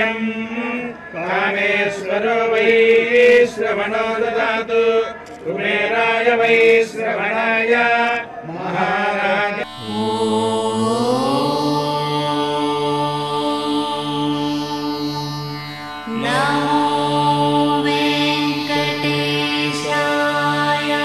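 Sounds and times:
person singing long notes: 0:09.5 - 0:21.0
drone: 0:09.6 - 0:21.0.

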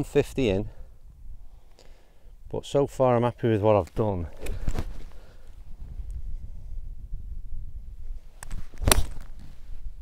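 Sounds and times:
wind rumbling on microphone: 0:00.0 - 0:01.7, 0:04.0 - 0:10.0.

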